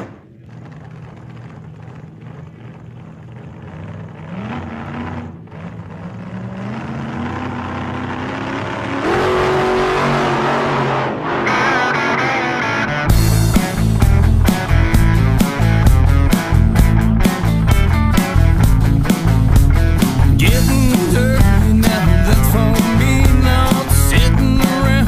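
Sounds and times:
vehicle engine accelerating: 0.0 - 25.0.

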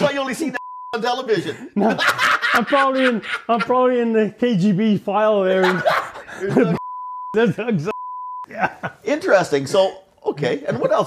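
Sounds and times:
voice: 0.0 - 11.0
censor bleep: 0.6 - 1.0, 6.8 - 8.5.

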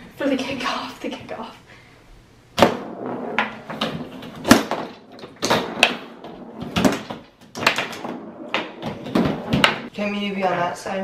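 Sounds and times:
foosball ball clacking: 2.6 - 9.9
foosball rods knocking: 2.6 - 9.9.

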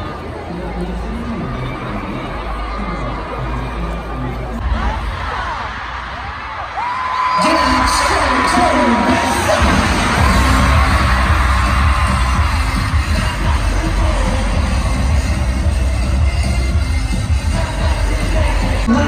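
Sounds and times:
crowd noise and voices: 0.0 - 19.0
amplified music with heavy bass: 7.7 - 19.0.

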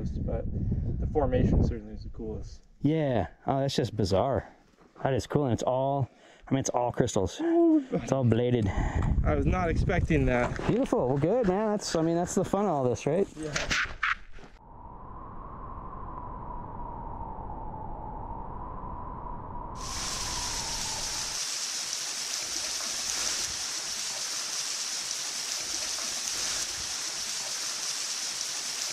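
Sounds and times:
waterfall rushing hiss: 19.8 - 28.9.

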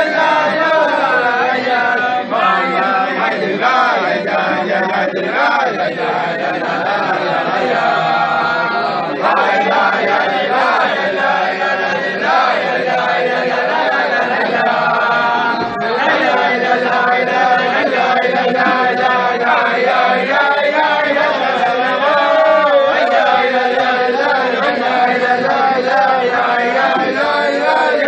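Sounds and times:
men singing together: 0.0 - 28.0.

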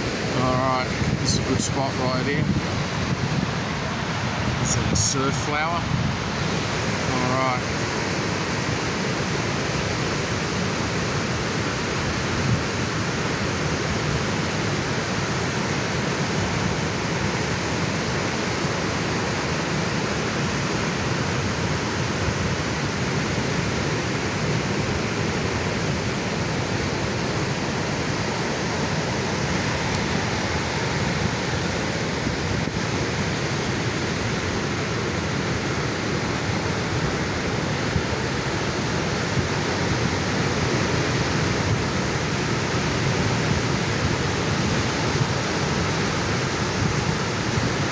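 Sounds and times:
ocean waves breaking: 0.0 - 47.9.

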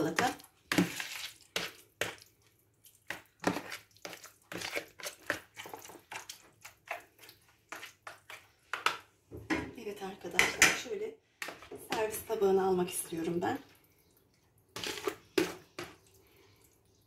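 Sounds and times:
wet squelches of stirring: 0.0 - 17.0.

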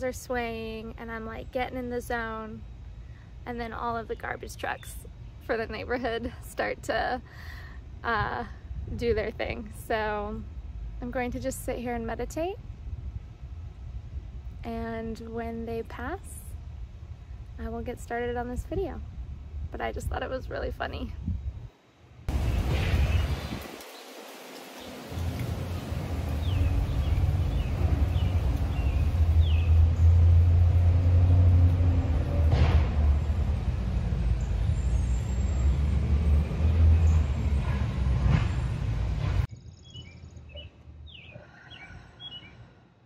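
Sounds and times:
birds chirping: 22.3 - 30.5, 33.2 - 42.7
garbage truck engine rumble: 25.1 - 39.5.

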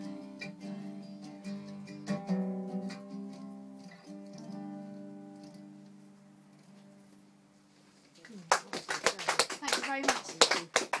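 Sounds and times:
audience clapping: 8.2 - 11.0.

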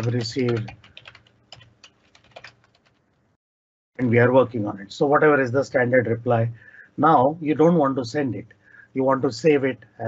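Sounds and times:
computer keyboard typing: 0.0 - 3.0.

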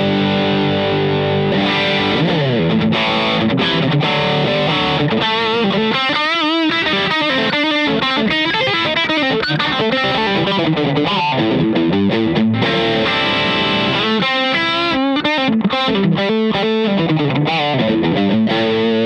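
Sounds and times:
distorted electric guitar lead: 0.0 - 19.0.

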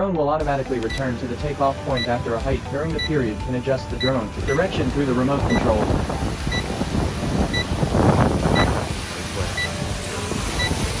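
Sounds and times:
short high electronic beep: 4.0 - 4.7, 9.6 - 9.8
drone propellers rushing: 4.3 - 11.0
wind on microphone: 4.4 - 11.0.

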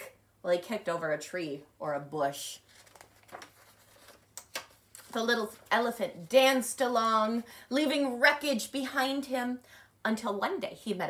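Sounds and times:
paper pages rustling: 2.6 - 5.8.

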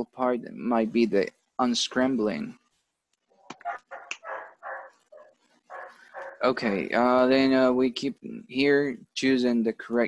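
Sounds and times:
faint dog barking: 3.4 - 6.8.

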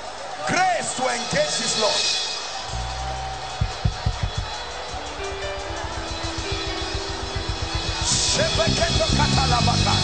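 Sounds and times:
low drum beats: 2.6 - 10.0.

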